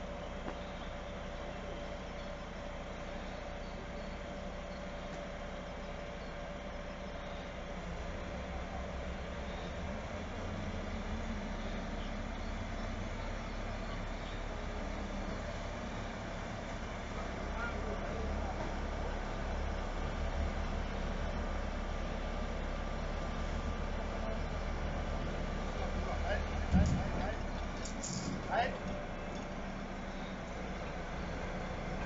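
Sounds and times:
crane diesel engine running: 0.0s - 32.0s.

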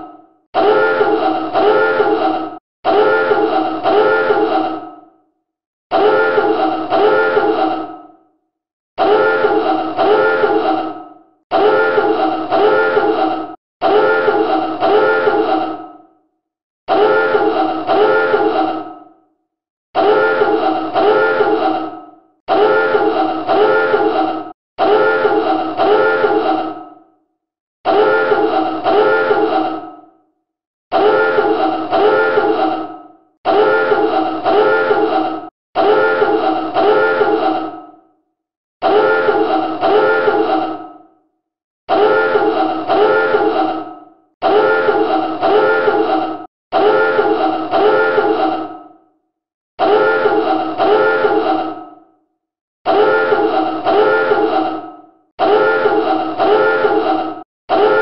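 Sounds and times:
submarine dive alarm blasts: 0.6s - 2.1s, 2.9s - 4.5s, 5.9s - 7.5s, 9.0s - 10.6s, 11.5s - 13.1s, 13.8s - 15.4s, 16.9s - 18.5s, 20.0s - 21.6s, 22.5s - 24.1s, 24.8s - 26.4s, 30.9s - 32.5s, 35.8s - 37.4s, 38.9s - 40.5s, 41.9s - 43.5s, 44.4s - 46.1s, 46.7s - 48.4s, 49.8s - 51.4s, 52.9s - 54.5s, 55.4s - 57.0s, 57.7s - 58.0s.

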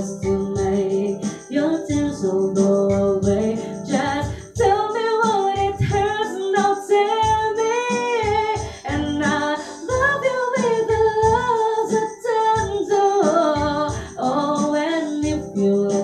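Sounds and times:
woman singing: 0.0s - 16.0s.

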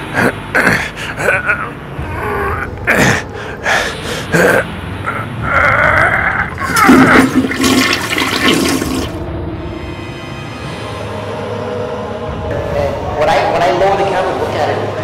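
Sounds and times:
toilet flushing: 6.6s - 9.2s.

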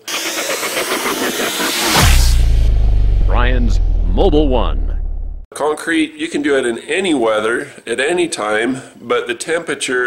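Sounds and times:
rattling hissing burst: 0.0s - 4.4s
falling whoosh: 0.0s - 5.4s
deep rumble: 0.4s - 5.5s.

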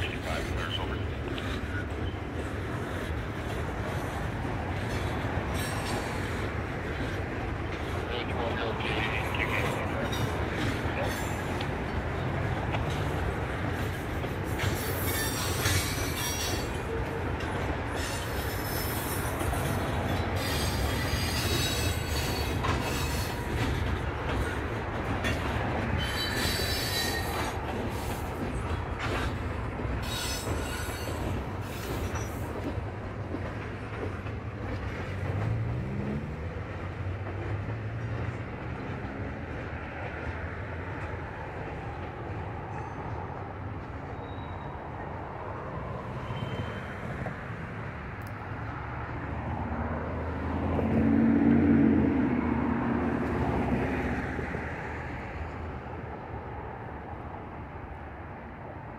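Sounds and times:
train clanks: 0.0s - 57.6s
freight train rumbling: 0.0s - 58.9s
train wheel squeals: 1.7s - 3.0s, 4.8s - 7.3s, 10.0s - 11.6s, 13.8s - 24.6s, 25.2s - 28.3s, 30.0s - 32.7s, 44.0s - 45.0s, 46.0s - 47.1s.

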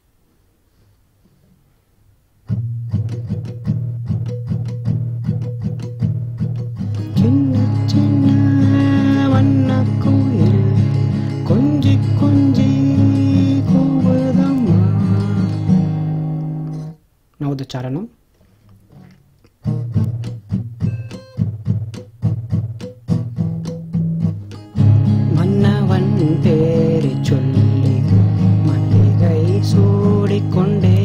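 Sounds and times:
acoustic guitar strumming: 2.4s - 17.0s, 18.9s - 31.0s
man singing: 7.0s - 15.7s, 25.2s - 31.0s.

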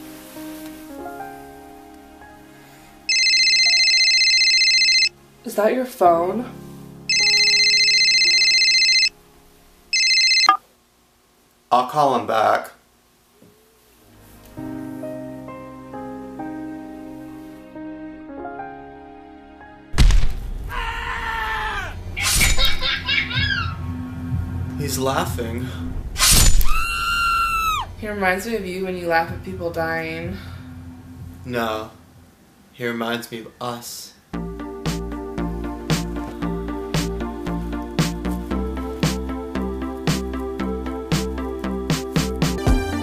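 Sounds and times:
warbling phone ringtone: 3.1s - 5.1s, 7.1s - 9.2s, 9.9s - 10.6s
high-pitched scream: 20.7s - 22.0s, 26.7s - 27.9s
loud crash: 26.0s - 27.0s.

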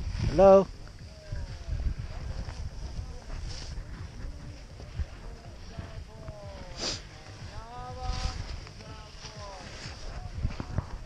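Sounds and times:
faint voices: 0.0s - 11.0s
wind buffeting microphone: 0.0s - 11.0s.

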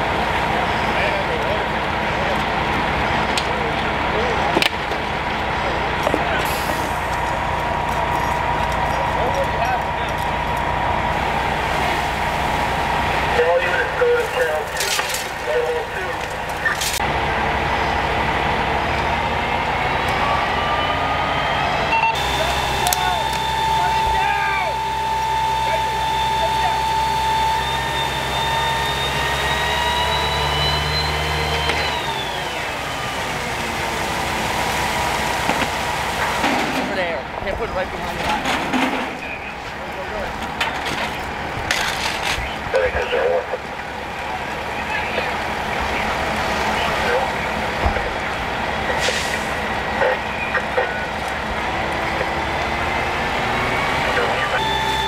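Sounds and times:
fire truck engine revving: 0.0s - 55.0s.

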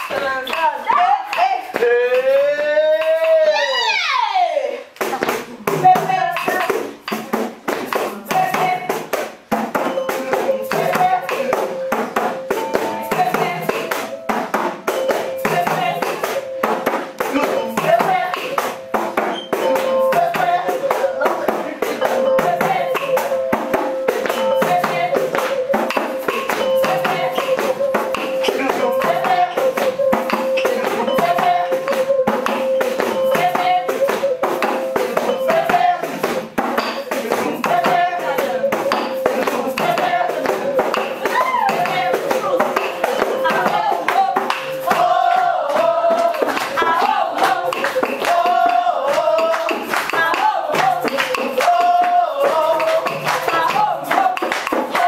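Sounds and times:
voices singing: 0.0s - 55.0s
frame drum beaten with stick: 5.0s - 55.0s.

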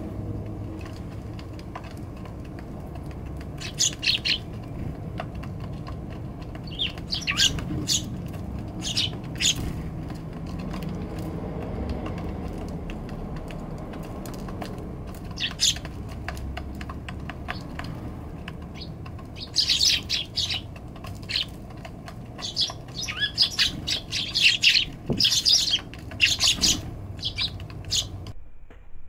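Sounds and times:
beaks tapping on wooden tray: 0.0s - 28.3s
sparrows chirping: 0.0s - 28.3s.

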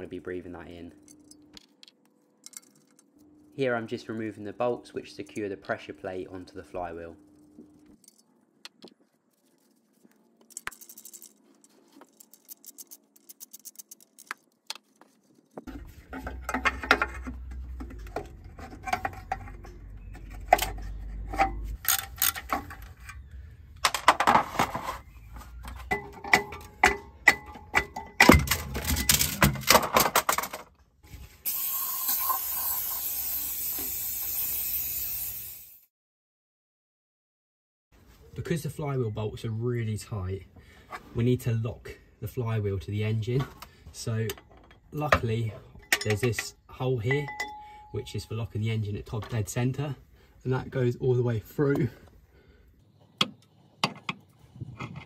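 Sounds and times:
metal clinking and knocks: 25.9s - 30.6s
steady hiss: 31.4s - 35.8s.

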